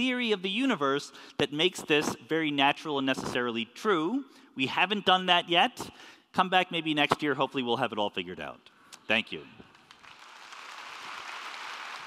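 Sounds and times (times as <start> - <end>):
audience applauding: 9.7 - 12.0.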